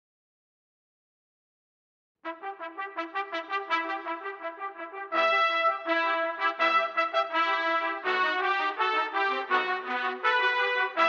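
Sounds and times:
trumpet ensemble playing: 2.3s - 11.0s.

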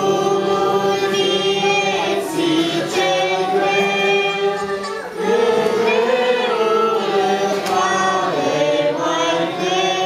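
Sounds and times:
girls singing into microphones: 0.0s - 10.0s.

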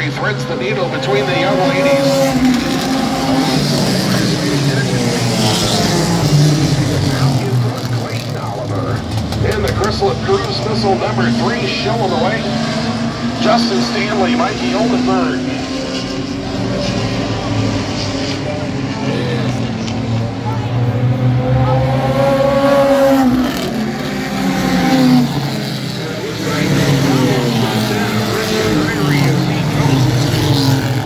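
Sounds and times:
race car engines passing: 0.0s - 31.0s.

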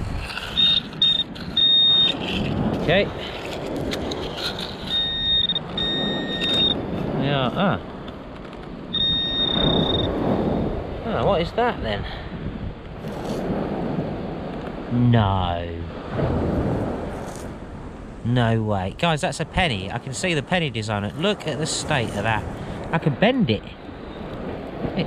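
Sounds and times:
sand scraping: 0.0s - 7.6s, 13.0s - 13.6s, 16.7s - 17.6s, 19.0s - 22.7s
surf: 0.0s - 25.0s
wind buffeting microphone: 0.0s - 25.0s
pinpointer beeping: 0.6s - 2.2s, 4.8s - 6.8s, 8.9s - 10.2s.

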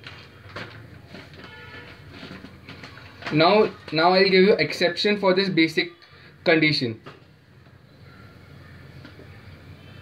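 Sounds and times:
notebook page turning: 0.0s - 4.4s.

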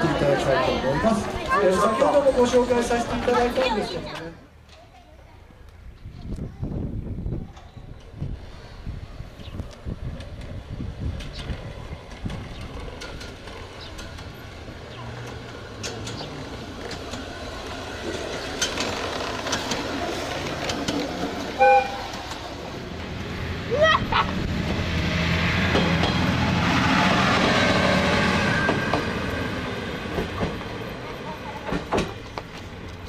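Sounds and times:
miniature train running on track: 7.4s - 33.0s
train horn toot: 21.6s - 22.2s.

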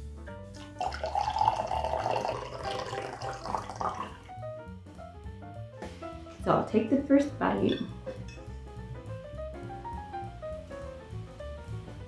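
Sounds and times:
coffee pouring into cup: 0.6s - 4.4s.

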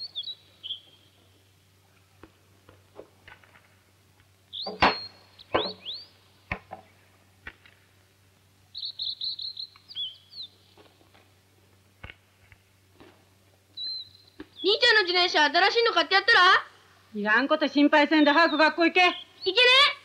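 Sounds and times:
small birds chirping: 0.0s - 2.4s, 4.2s - 7.5s, 8.4s - 11.2s, 13.6s - 16.4s, 17.7s - 20.0s.

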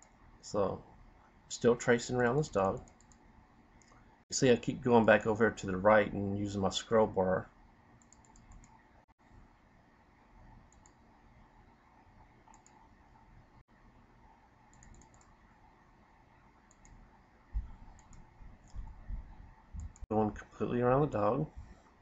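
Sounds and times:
computer mouse clicks: 2.7s - 3.2s, 8.0s - 8.8s, 10.7s - 11.0s, 12.4s - 12.9s, 14.7s - 15.4s, 16.7s - 17.1s, 17.7s - 19.0s.

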